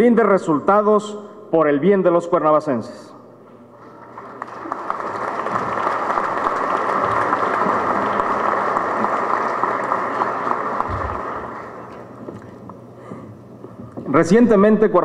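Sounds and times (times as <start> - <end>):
audience applause: 3.8 - 12.1.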